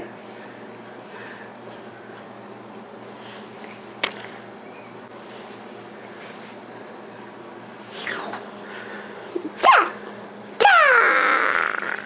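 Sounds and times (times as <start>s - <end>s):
child squealing: 10.6s - 12.0s.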